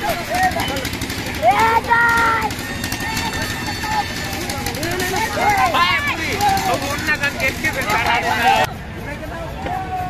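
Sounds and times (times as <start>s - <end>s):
steady background noise: 0.0s - 10.0s
young people calling out: 1.3s - 7.1s.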